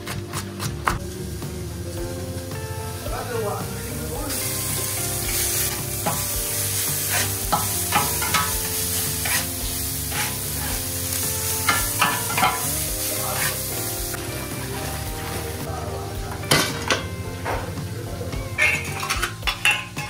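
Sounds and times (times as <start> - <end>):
meat sizzling on a griddle: 1.0 - 20.0
metal spatula scraping griddle: 5.2 - 13.8, 18.6 - 20.0.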